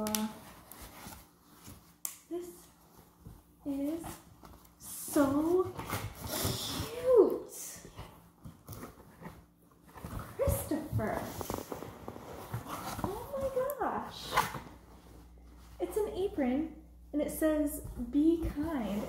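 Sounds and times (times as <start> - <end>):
fabric and cardboard rustling: 0.0 - 19.0.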